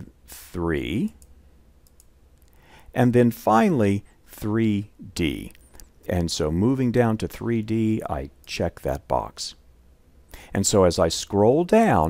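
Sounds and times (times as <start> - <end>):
faint computer mouse clicks: 1.2 - 2.5.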